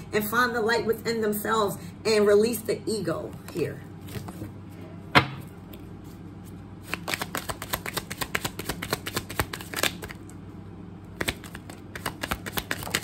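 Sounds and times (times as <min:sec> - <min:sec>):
cards being shuffled: 0:03.5 - 0:04.6, 0:05.6 - 0:10.3, 0:11.2 - 0:13.0.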